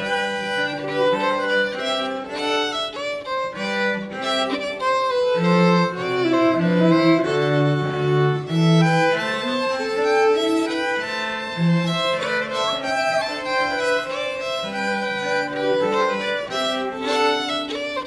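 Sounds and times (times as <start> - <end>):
cello sustaining low notes: 0.0 - 18.0
violins playing slow melody: 0.0 - 18.0.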